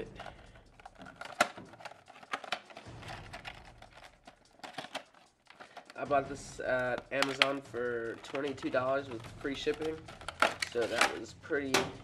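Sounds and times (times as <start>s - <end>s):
plastic and card clicks and snaps: 0.1s - 6.0s, 6.8s - 12.0s.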